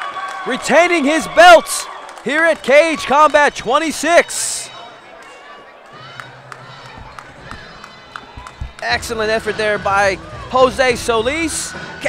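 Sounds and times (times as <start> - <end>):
distant voices and crowd murmur: 2.3 - 12.0
light knocks: 6.8 - 8.9.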